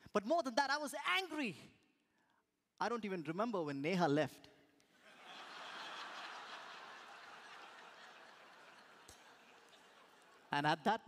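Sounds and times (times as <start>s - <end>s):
audience laughter: 5.0s - 10.5s.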